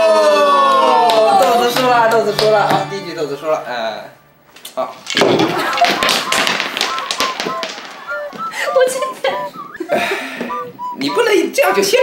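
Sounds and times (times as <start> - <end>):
stacking game pieces crashing: 5.0 - 8.4
small pieces clicking and knocking: 5.1 - 8.4.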